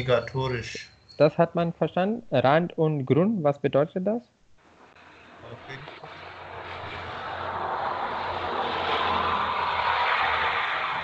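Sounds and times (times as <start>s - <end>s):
broad rushing noise: 4.7s - 11.0s.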